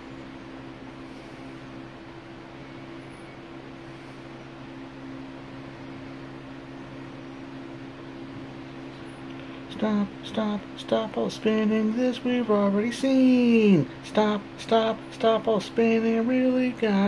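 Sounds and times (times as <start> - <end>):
fan blades rushing air: 0.0 - 17.0
low fan hum: 0.0 - 17.0.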